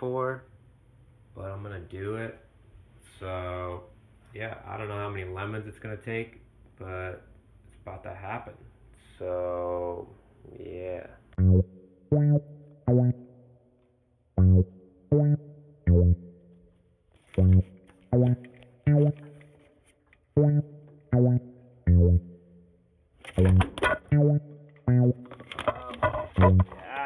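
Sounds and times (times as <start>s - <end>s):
plucked bass guitar notes: 11.4s - 13.4s, 14.4s - 16.5s, 17.4s - 19.4s, 20.4s - 22.5s, 23.4s - 26.9s.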